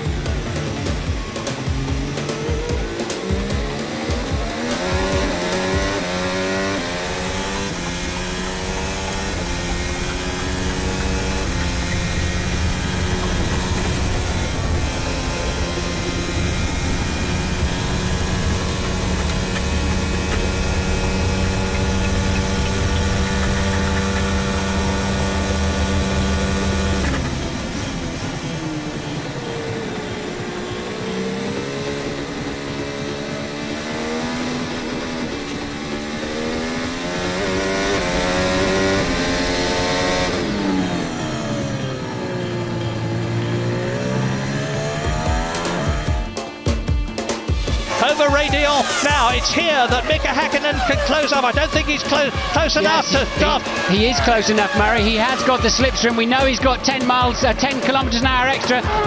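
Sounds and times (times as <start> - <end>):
racing car engine: 0.0 - 59.0.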